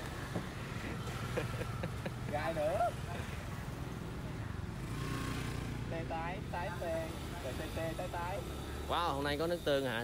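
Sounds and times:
street traffic hum: 0:00.0 - 0:10.0.

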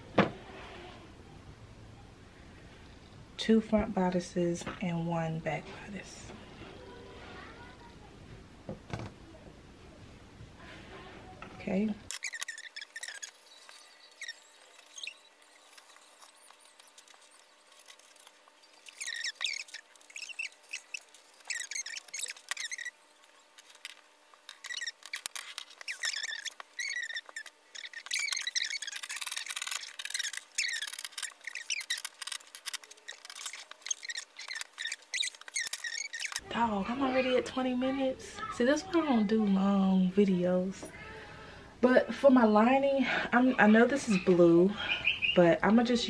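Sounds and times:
scissor blades scraping: 0:12.1 - 0:36.4.

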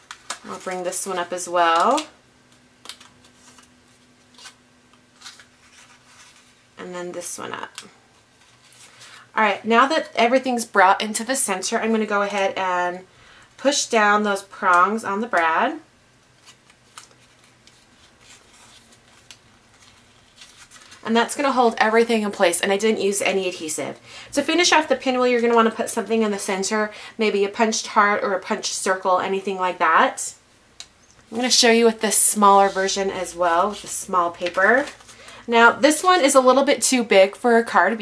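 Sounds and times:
paper rustling: 0:02.8 - 0:04.6, 0:05.2 - 0:06.6, 0:16.3 - 0:22.2, 0:32.4 - 0:35.4
paper crinkles: 0:02.8 - 0:06.6, 0:07.2 - 0:09.3, 0:16.3 - 0:22.1, 0:32.6 - 0:35.4.

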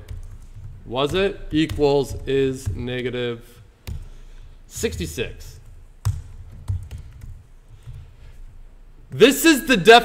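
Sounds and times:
computer keyboard typing: 0:00.0 - 0:01.8, 0:05.6 - 0:08.1.

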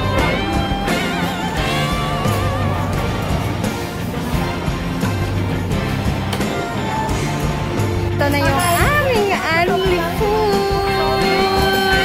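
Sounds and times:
background music: 0:00.0 - 0:12.0
person singing: 0:09.8 - 0:12.0.

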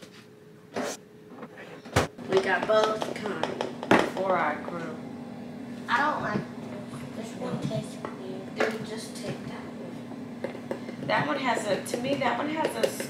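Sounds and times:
voices talking: 0:02.2 - 0:10.4, 0:11.0 - 0:13.0.

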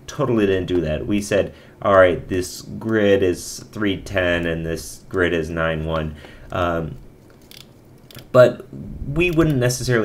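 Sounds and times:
man speaking: 0:00.0 - 0:07.1, 0:08.3 - 0:10.0.

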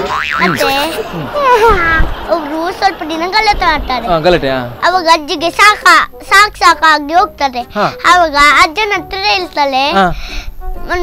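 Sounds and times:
springy boing sound effect: 0:00.0 - 0:01.0
man speaking: 0:00.4 - 0:01.4
young boy speaking: 0:00.4 - 0:11.0.

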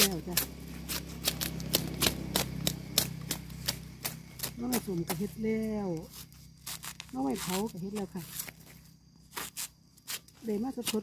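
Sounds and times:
bamboo sheaths snapping: 0:00.0 - 0:03.8, 0:06.6 - 0:11.0.

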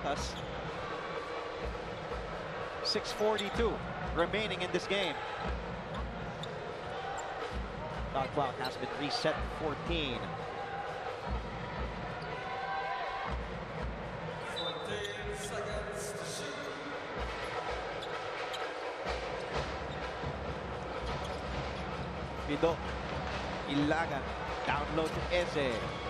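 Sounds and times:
murmur of arena crowd: 0:00.0 - 0:26.0.

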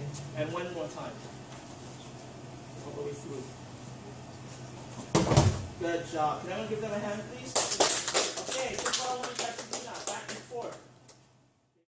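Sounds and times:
children clapping: 0:07.5 - 0:10.9.

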